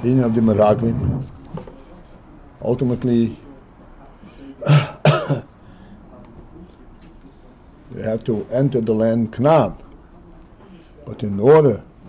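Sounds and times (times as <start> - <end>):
man clearing his throat: 4.6 - 5.5.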